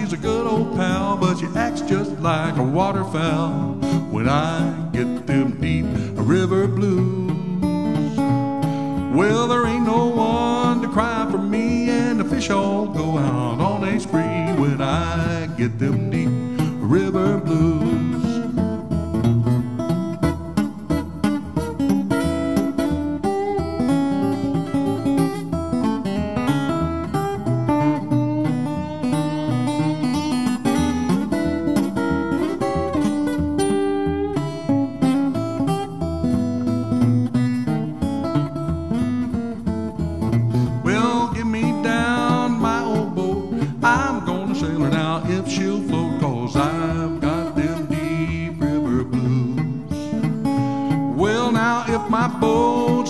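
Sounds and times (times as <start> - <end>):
acoustic guitar playing: 0.0 - 53.0.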